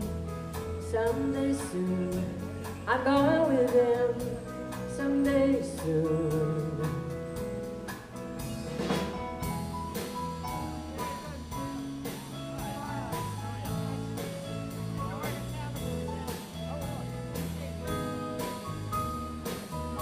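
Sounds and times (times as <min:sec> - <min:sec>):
country band playing: 0:00.0 - 0:20.0
drum kit steady beat: 0:00.0 - 0:20.0.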